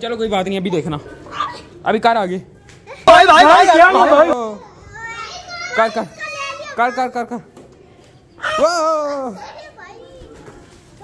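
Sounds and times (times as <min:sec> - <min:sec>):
young child shouting: 0:08.4 - 0:10.1.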